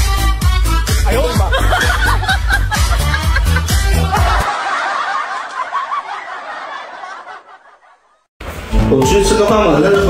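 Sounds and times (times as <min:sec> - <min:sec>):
music with heavy beat: 0:00.0 - 0:04.5
high wavering snicker of laughter: 0:01.2 - 0:08.2.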